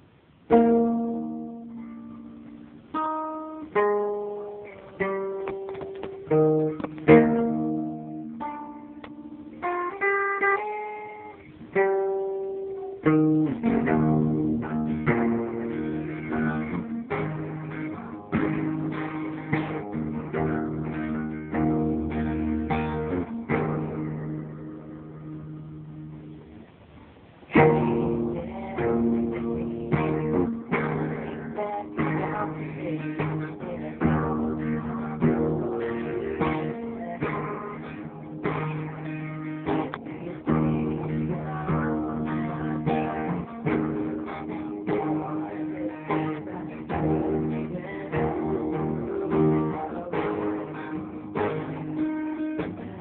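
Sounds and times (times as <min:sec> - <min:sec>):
acoustic guitar playing: 0:00.0 - 0:53.0.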